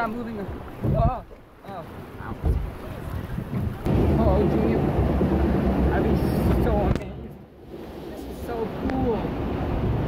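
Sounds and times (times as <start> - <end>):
wind buffeting microphone: 2.2 - 10.0.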